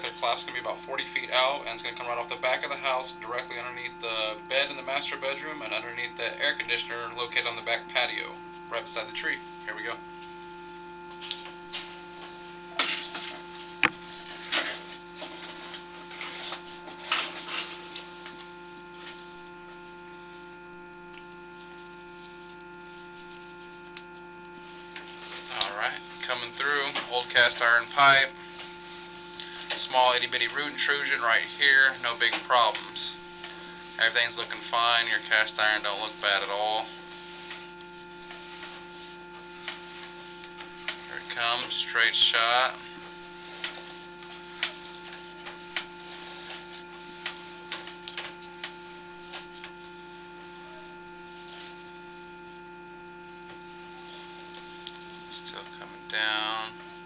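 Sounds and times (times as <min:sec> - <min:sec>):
electrical hum: 0:00.0 - 0:57.0.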